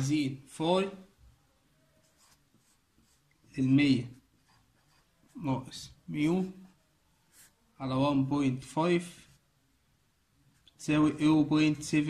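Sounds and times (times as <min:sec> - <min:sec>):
pen writing on paper: 0:02.0 - 0:03.3, 0:04.3 - 0:05.4.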